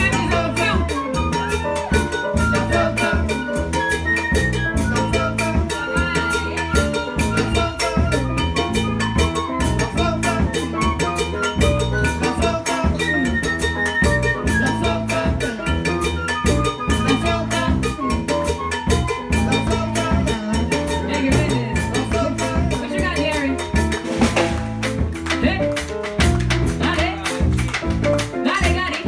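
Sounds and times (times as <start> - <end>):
bass line: 0.0 - 29.0
drum kit beat: 0.0 - 29.0.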